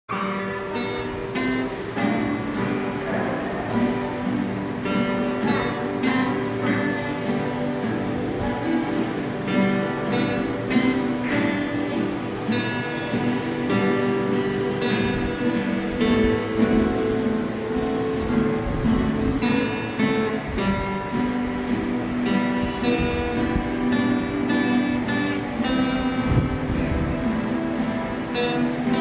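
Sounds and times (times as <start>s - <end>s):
acoustic guitars strumming chords: 0.1s - 29.0s.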